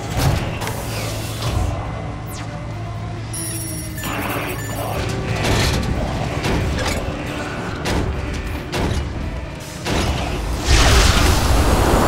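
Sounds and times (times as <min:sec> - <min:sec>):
electronic chirps and beeps: 0:03.3 - 0:05.0.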